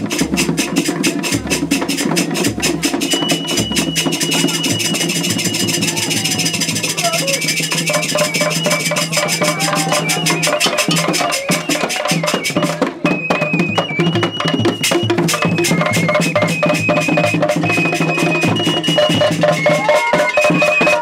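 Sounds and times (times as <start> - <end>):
hand drums beating fast rhythm: 0.0 - 21.0
steady high tone: 3.0 - 12.9.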